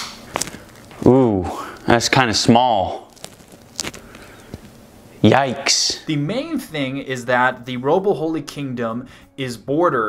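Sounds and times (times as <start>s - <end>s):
low steady background hiss: 0.0s - 10.0s.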